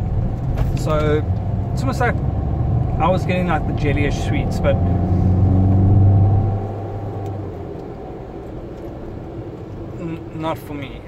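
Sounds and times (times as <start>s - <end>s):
car engine low hum: 0.0s - 11.0s.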